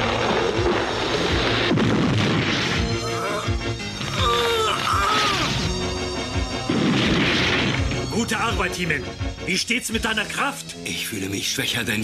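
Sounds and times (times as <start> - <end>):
dramatic background music: 0.0 - 12.0
cartoon tree crashing down: 6.7 - 8.0.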